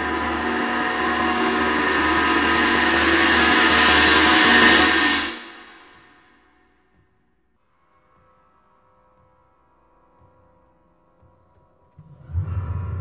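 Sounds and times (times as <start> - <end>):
horror film score music: 0.0 - 13.0.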